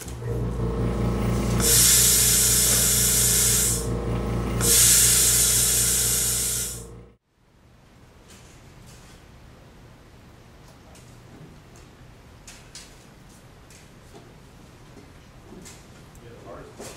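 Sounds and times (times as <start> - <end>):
air compressor humming: 0.0 - 7.2
air hissing from hose: 1.5 - 7.0.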